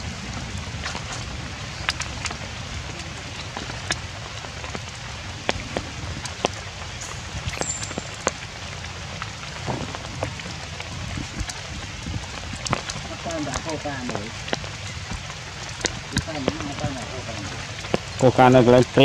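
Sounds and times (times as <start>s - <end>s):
rain on leafy undergrowth: 0.0s - 19.0s.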